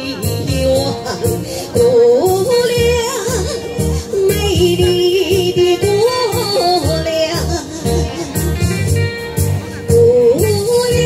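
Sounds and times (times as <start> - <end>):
woman singing wordless melody: 0.0 - 8.6, 9.8 - 11.0
backing track with steady beat: 0.0 - 11.0.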